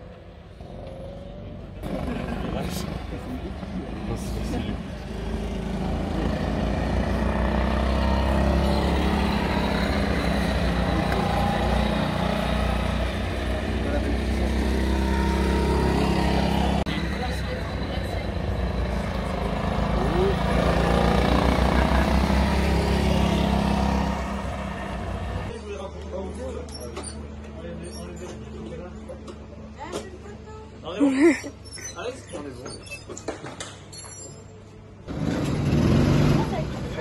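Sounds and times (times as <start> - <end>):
go-kart engines droning: 0.0 - 25.6, 35.1 - 37.0.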